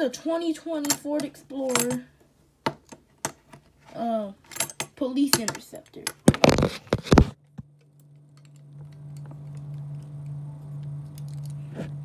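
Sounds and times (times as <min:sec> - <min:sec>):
steady low hum: 0:00.0 - 0:12.0
phone rubbing and knocking: 0:06.3 - 0:07.4.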